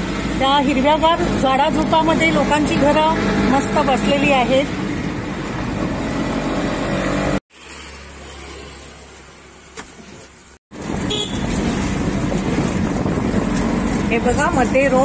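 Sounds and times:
auto-rickshaw engine: 0.0 - 15.0
road noise: 0.0 - 15.0.

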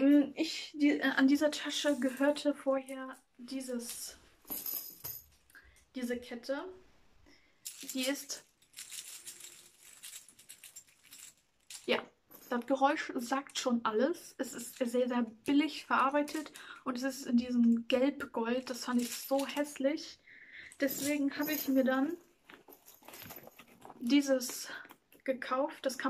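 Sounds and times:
chain links clinking: 1.8 - 5.8, 7.6 - 12.7, 14.4 - 16.7, 18.7 - 19.8, 20.6 - 24.1.

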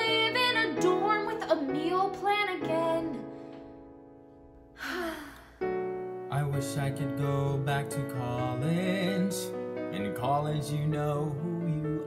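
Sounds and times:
singer's breathy sigh: 4.8 - 5.6.

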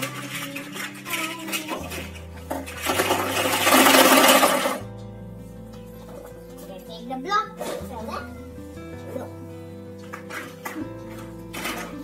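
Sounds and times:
held bass notes: 0.0 - 12.0
plucked guitar tune: 0.0 - 12.0.

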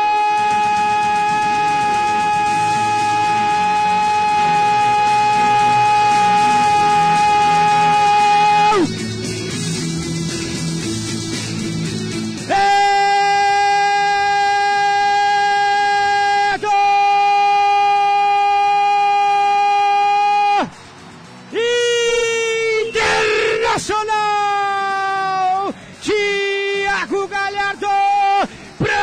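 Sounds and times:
radio commentator shouting goal: 0.0 - 8.9, 12.5 - 20.7, 21.6 - 29.0.

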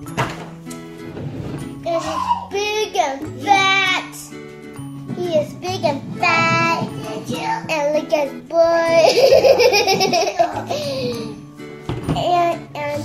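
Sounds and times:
light background music: 0.0 - 13.0
girl making playful vocal sounds: 1.9 - 2.8
girl laughing: 9.0 - 11.4.

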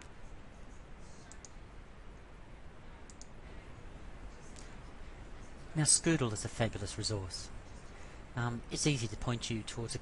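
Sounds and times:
low room hiss: 0.0 - 10.0
computer mouse clicks: 1.1 - 1.6, 3.0 - 3.4.

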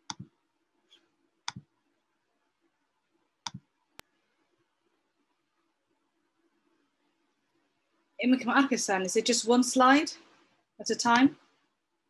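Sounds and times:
computer mouse clicks: 0.0 - 0.3, 0.9 - 1.7, 3.4 - 4.1.

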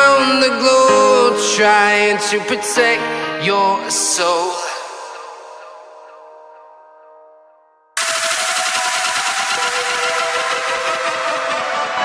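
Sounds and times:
background music with sustained tones: 0.0 - 12.0
hissing wash of noise: 8.0 - 12.0.

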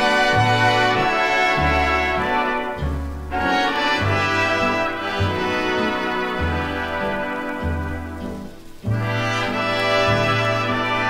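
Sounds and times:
brass playing sustained chords: 0.0 - 11.0.

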